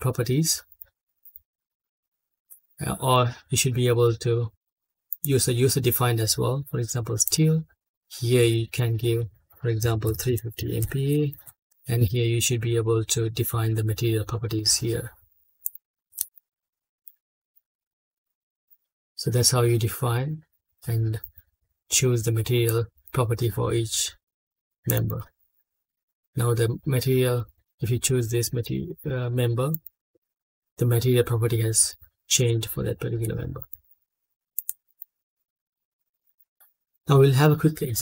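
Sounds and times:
computer mouse click: 34.6s - 35.1s.

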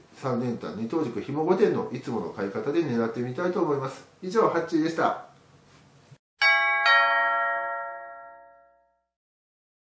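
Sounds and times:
two-note ding-dong chime: 6.4s - 9.1s.

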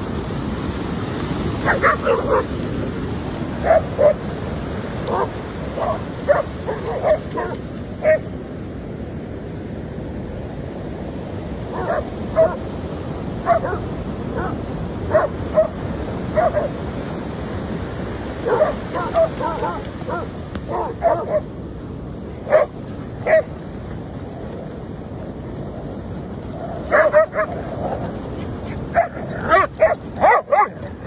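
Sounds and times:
surf rushing: 0.0s - 9.2s, 11.0s - 31.0s
dogs barking and yipping: 1.6s - 2.7s, 3.6s - 4.4s, 5.0s - 8.3s, 11.7s - 12.6s, 13.4s - 16.8s, 18.4s - 21.6s, 22.4s - 23.6s, 26.4s - 31.0s.

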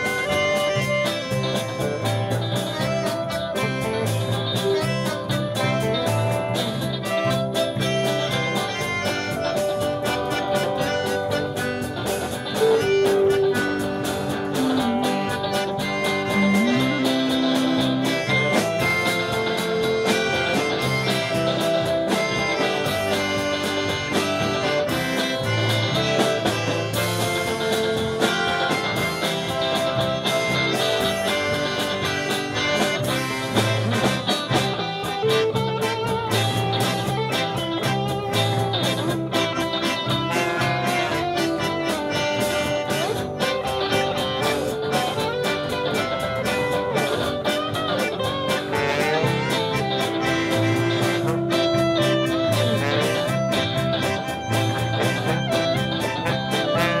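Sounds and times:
clarinet: 0.0s - 57.0s
polka band playing: 0.0s - 57.0s
trombone: 0.0s - 57.0s.

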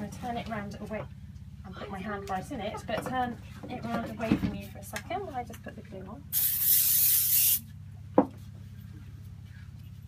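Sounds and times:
aerosol spray can hissing: 6.3s - 7.6s.

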